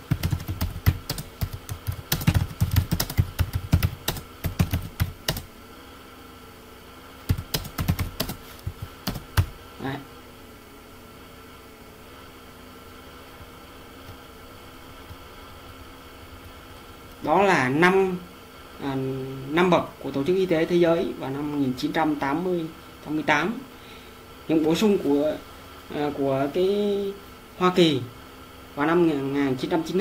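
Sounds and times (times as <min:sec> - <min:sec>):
computer keyboard typing: 0:00.0 - 0:05.5, 0:07.3 - 0:09.6
faint steady hum: 0:00.0 - 0:30.0.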